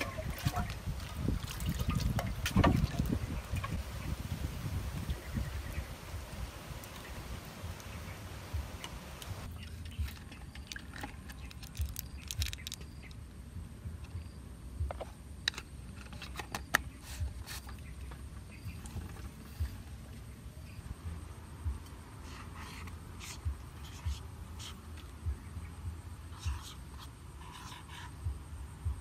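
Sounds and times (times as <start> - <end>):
liquid trickling: 0.0 - 3.8
sharp clicks and crackles: 10.0 - 13.2.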